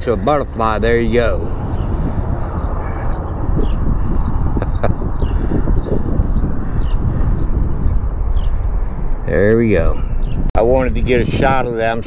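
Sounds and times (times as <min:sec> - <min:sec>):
wind rumble on microphone: 0:00.0 - 0:12.0
small bird chirping: 0:01.7 - 0:09.0.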